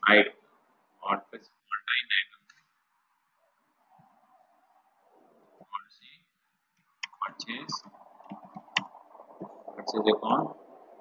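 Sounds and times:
computer keyboard typing: 7.0s - 9.8s.

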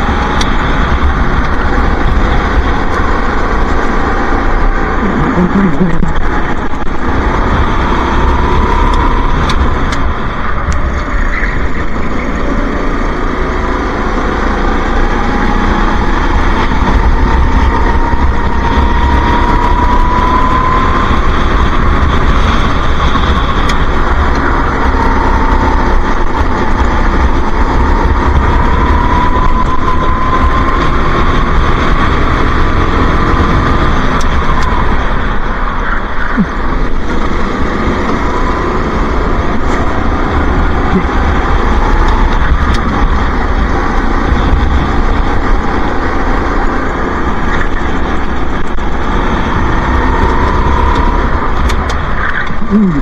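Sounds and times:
go-kart engine racing: 0.0s - 53.0s
steady low rumble: 0.0s - 53.0s.

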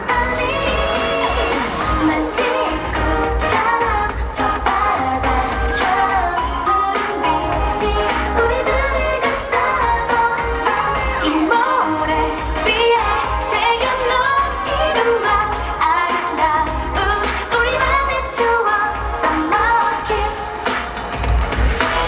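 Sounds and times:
dance-pop song with female vocals: 0.0s - 22.0s.

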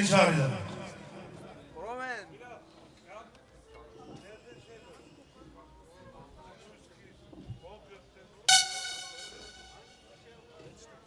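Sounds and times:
faint background chatter: 0.8s - 11.0s
loud horn-like tone: 8.5s - 10.0s.

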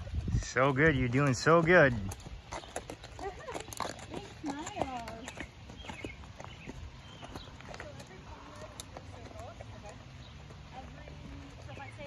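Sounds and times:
horse hooves clip-clopping: 0.0s - 12.0s
soft voices talking: 3.1s - 5.5s, 7.2s - 12.0s.

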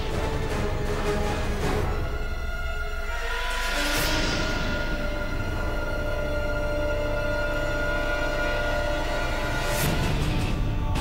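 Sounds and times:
tense droning background score: 0.0s - 11.0s.

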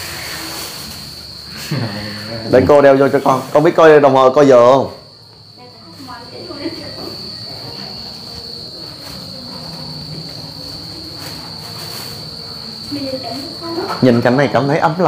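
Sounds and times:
crickets chirring: 0.0s - 15.0s.

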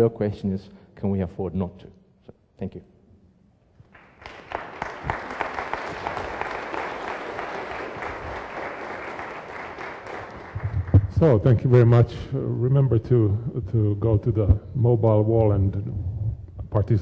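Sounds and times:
audience applauding: 3.9s - 11.2s.

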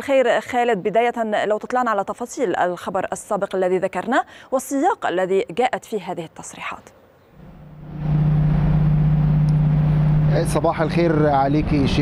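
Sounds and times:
vehicle engine droning: 7.4s - 12.0s.

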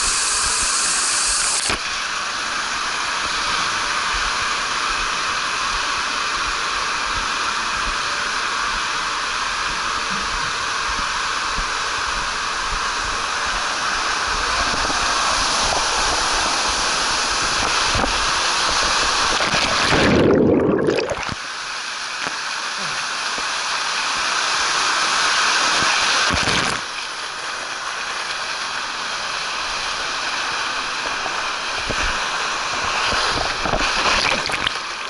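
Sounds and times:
water rushing through slide tube: 0.0s - 35.0s.

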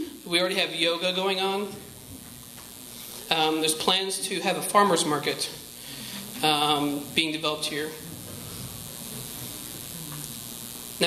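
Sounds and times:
room tone hiss: 0.0s - 11.0s
faint low murmur: 5.5s - 11.0s.

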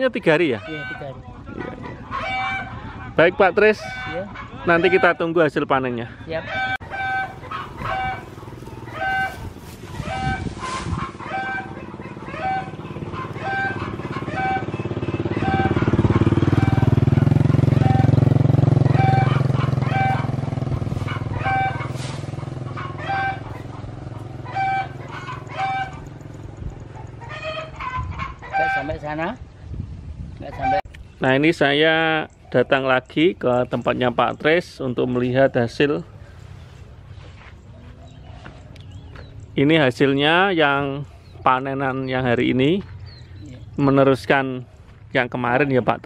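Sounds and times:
motorbike passing: 6.6s - 30.8s, 32.0s - 46.0s.

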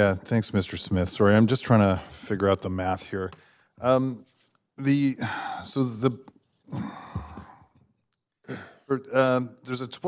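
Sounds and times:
man speaking: 0.0s - 6.3s, 8.7s - 10.0s
man sighing: 6.7s - 7.6s.

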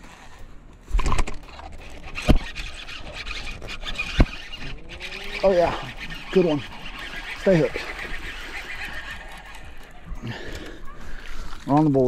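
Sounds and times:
fishing reel whirring: 1.0s - 11.6s.

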